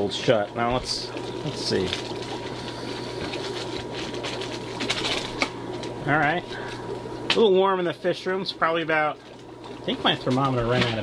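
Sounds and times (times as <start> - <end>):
steady low hum: 0.0 - 11.0
plastic bag crinkling and tearing: 3.3 - 5.9.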